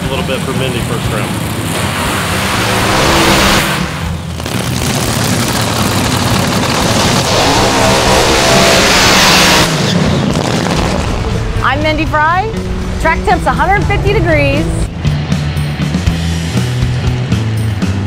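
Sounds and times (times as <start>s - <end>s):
dragster engine roaring: 0.0s - 18.0s
background music: 11.1s - 18.0s.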